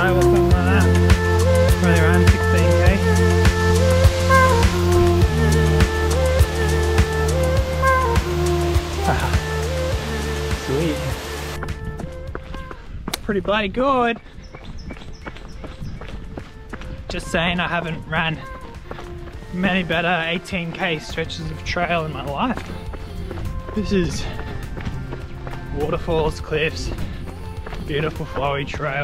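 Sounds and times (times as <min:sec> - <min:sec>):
background music with steady beat: 0:00.0 - 0:29.0
running footsteps on dirt: 0:11.6 - 0:29.0.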